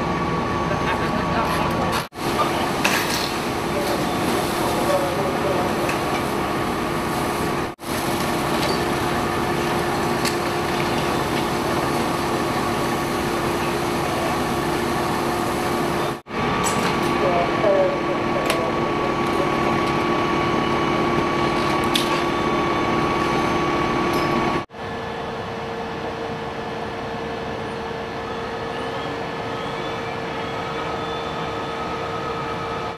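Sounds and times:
fire truck engine idling: 0.1 - 16.6.

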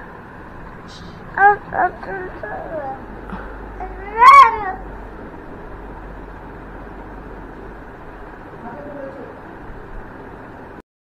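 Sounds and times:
toddler whining cry: 3.8 - 4.8.

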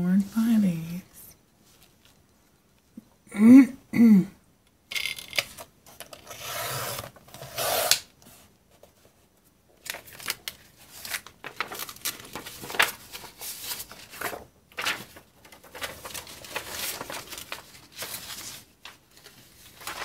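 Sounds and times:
paper rustling: 9.8 - 20.0.

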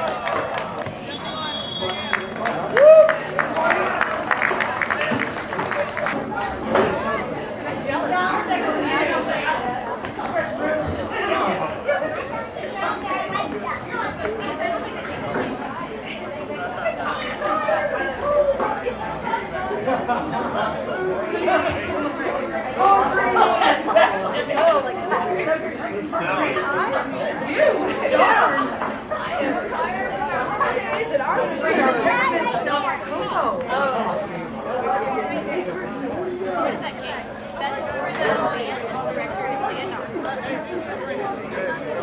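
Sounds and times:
many voices chattering: 0.0 - 42.0.

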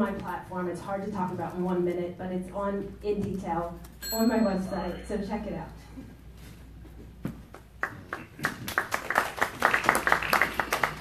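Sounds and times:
audience applauding: 7.8 - 11.0.

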